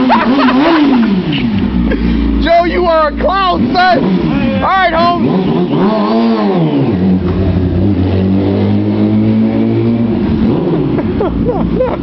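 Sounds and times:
motorcycle engine pulling away: 5.1s - 11.0s.

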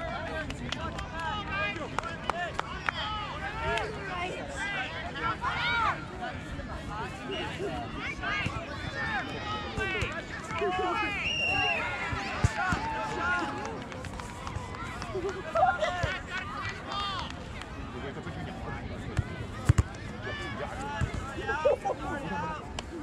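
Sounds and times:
spectators talking: 0.0s - 23.0s.

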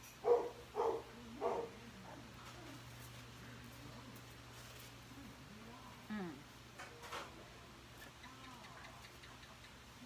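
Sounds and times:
faint low hum: 0.0s - 10.0s
faint voice: 5.0s - 10.0s.

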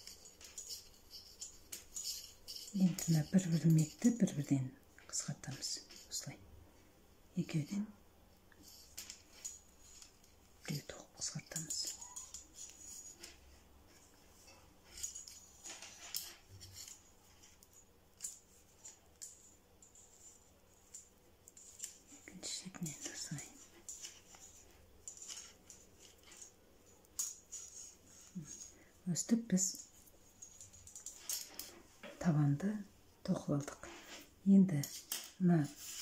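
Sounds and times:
metal knitting needles clicking: 0.0s - 6.2s, 14.4s - 28.7s, 29.7s - 31.7s
yarn rubbing: 0.0s - 6.3s, 8.6s - 28.8s.

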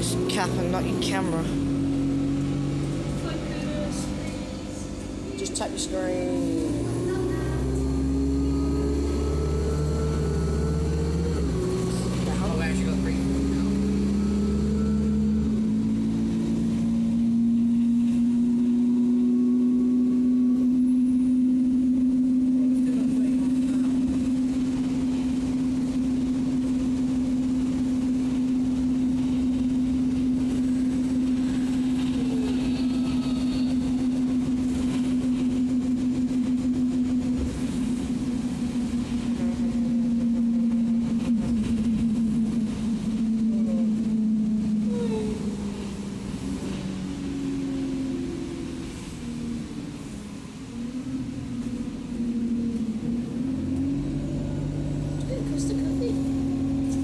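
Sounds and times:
bus engine droning: 0.0s - 57.0s.

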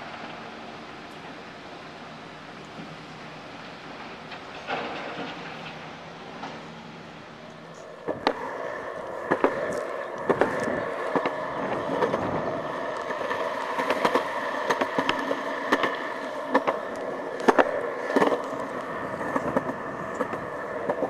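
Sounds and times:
skateboard wheels rolling on concrete: 0.0s - 21.0s.

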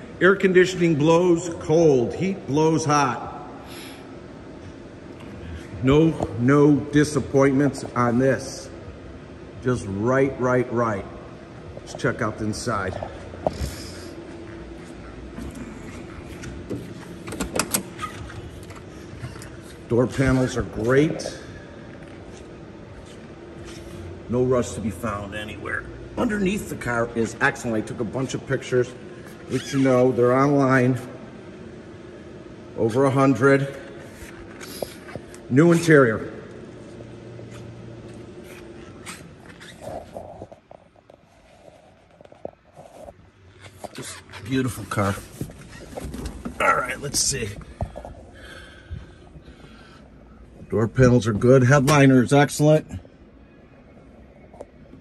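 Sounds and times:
car door unlatching and opening: 16.5s - 18.9s.

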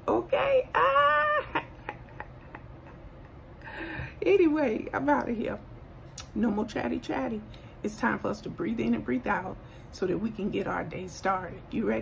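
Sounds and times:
woman exclaiming: 0.0s - 2.0s.

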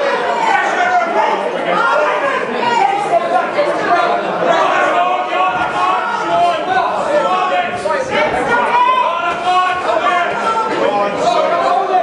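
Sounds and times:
crowd chattering and calling out: 0.0s - 12.0s.

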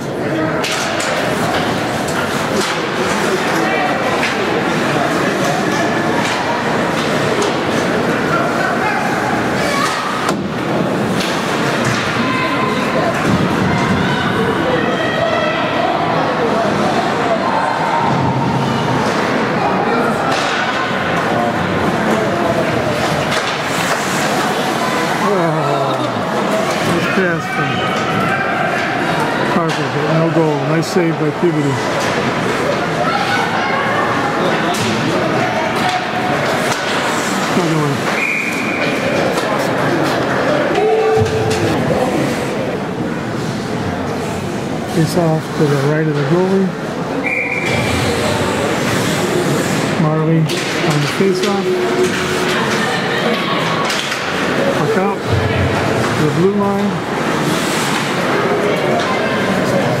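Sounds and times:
spectators and players shouting: 0.0s - 44.8s, 50.8s - 60.0s.

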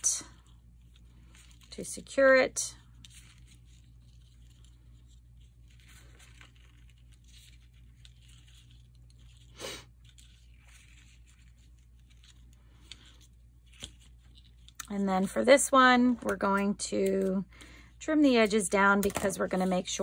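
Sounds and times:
paper and thread rustling: 0.0s - 20.0s.

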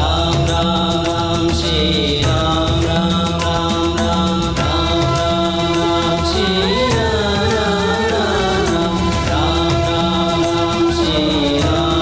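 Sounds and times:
chant-like singing: 0.0s - 12.0s
low drone: 0.0s - 12.0s
percussion beat: 0.0s - 12.0s.

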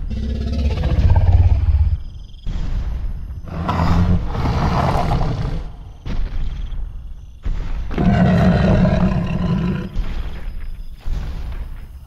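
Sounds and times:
deep growling roars: 0.0s - 2.0s, 3.5s - 5.8s, 7.9s - 10.0s.

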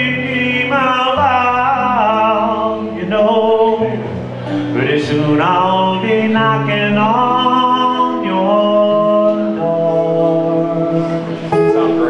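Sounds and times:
acoustic guitar: 0.0s - 12.0s
men singing in harmony: 4.7s - 11.4s.

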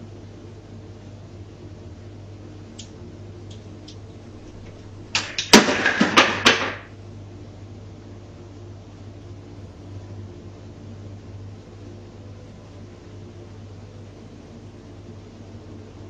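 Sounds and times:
low electrical hum: 0.0s - 16.0s
objects clattering: 4.4s - 6.9s.

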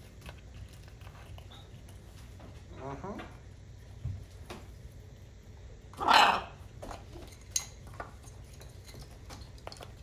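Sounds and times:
parrot squawk: 6.0s - 6.6s.

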